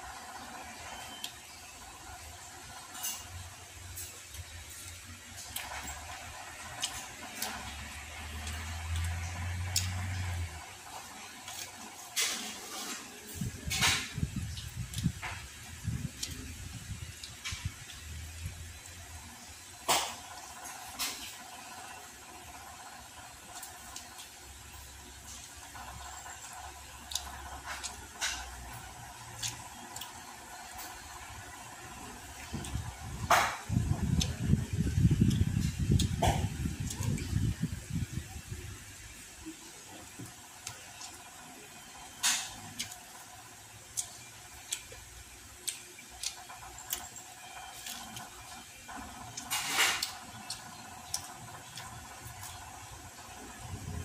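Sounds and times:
man chewing crispy food: 0.0 - 54.0.

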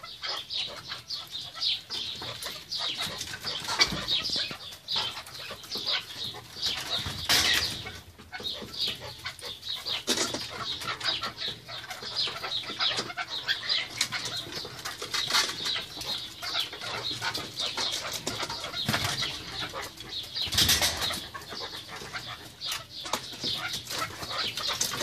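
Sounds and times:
partridges scuffling: 0.0 - 25.0.

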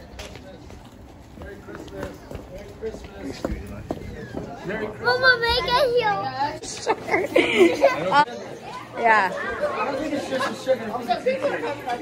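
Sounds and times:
children's voices: 5.0 - 6.6.

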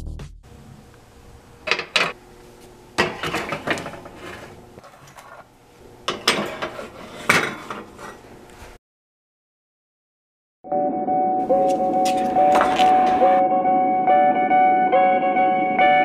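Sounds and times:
metal tins scraping on oven racks: 3.0 - 5.5, 6.1 - 8.8.

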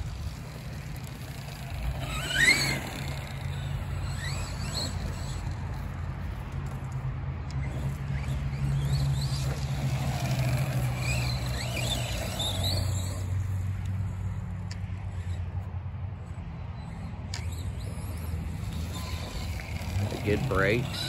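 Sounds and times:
toy car electric motor whine: 0.0 - 6.9, 7.6 - 14.4, 16.8 - 21.0.

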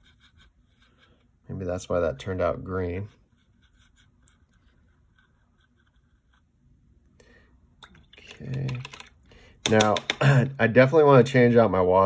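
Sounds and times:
paintbrush scraping and tapping palette: 0.0 - 6.7.

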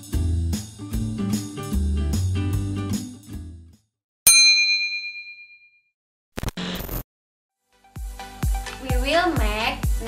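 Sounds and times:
bright bell-like ding: 4.3 - 5.8.

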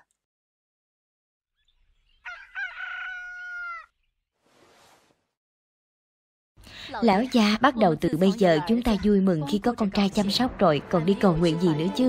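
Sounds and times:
rooster crowing: 2.2 - 3.9.

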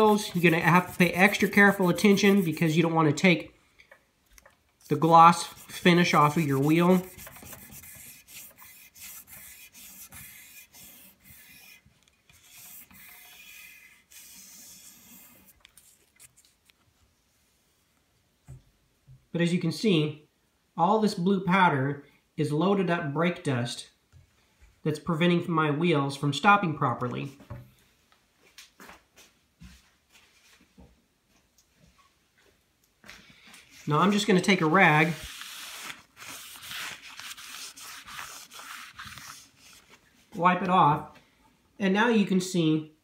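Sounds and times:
sandpaper scraping on rim: 0.0 - 2.9, 4.9 - 16.2, 33.7 - 39.8.

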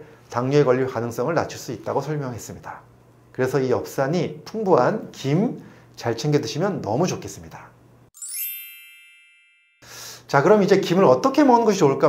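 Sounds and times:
bright bell-like chime: 8.1 - 10.1.

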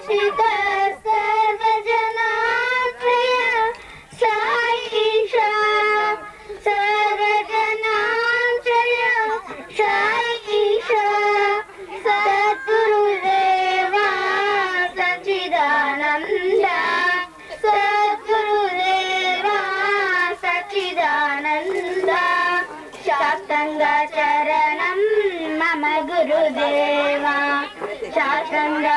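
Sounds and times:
girls singing devotional song: 0.0 - 28.9.

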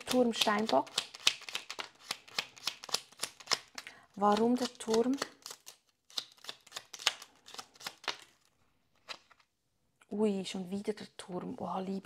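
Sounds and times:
cards being shuffled: 0.0 - 9.5.

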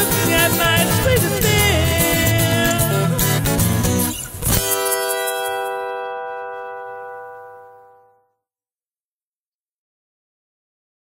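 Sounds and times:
strummed acoustic guitar chord: 0.0 - 8.2.

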